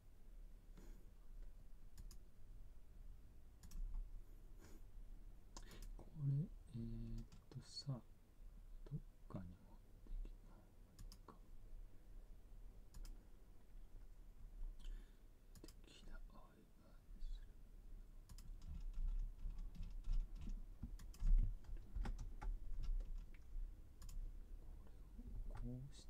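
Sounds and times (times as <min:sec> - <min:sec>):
low steady hum: 0:00.0 - 0:26.0
keyboard typing: 0:03.6 - 0:04.0, 0:12.9 - 0:13.2, 0:18.3 - 0:24.2.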